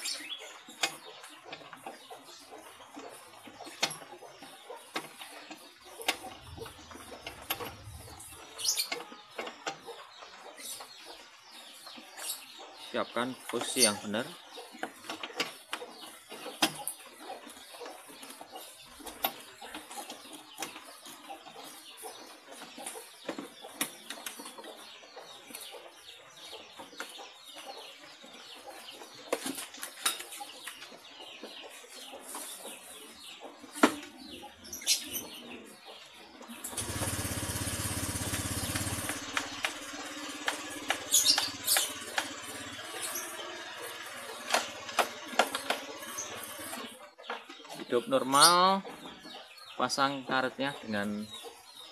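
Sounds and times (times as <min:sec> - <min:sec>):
scooter engine starting and idling: 0:03.8 - 0:11.7, 0:36.3 - 0:47.2.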